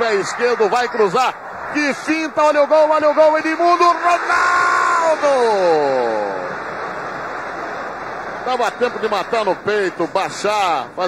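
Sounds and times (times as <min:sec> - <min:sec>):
male commentator's drawn-out exclamation: 0:00.0 - 0:06.5
stadium crowd noise: 0:00.0 - 0:11.0.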